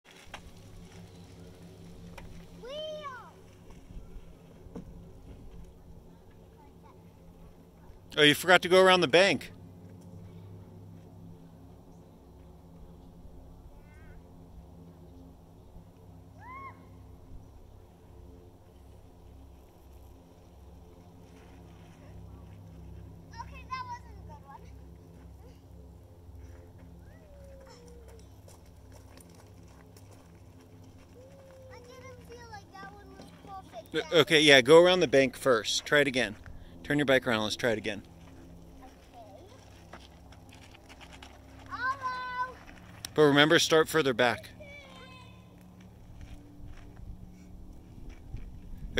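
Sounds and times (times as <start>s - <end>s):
bicycle pushed on gravel path: 0.0s - 13.4s, 17.5s - 48.9s
footsteps on gravel: 0.1s - 5.7s, 20.8s - 23.6s, 26.4s - 34.0s, 37.6s - 43.4s, 44.9s - 48.9s
child's high-pitched call: 2.6s - 3.4s, 13.7s - 14.2s, 16.4s - 16.9s, 31.2s - 33.8s, 41.7s - 42.6s, 44.6s - 45.5s.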